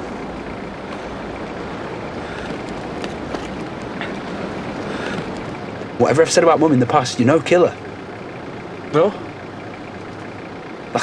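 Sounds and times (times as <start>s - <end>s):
car cabin background hiss: 0.0s - 11.0s.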